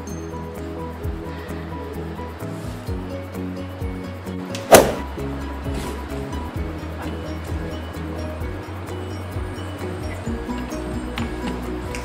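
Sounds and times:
background music with steady beat: 0.0s - 12.0s
sudden loud hit: 4.7s - 5.1s.

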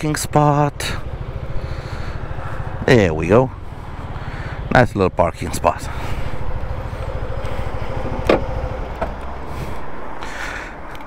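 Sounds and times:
scooter engine idling: 0.0s - 10.7s.

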